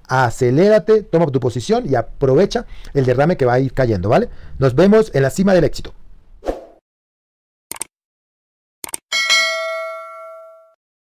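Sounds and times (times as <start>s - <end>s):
notification bell ding: 9.1s - 10.8s.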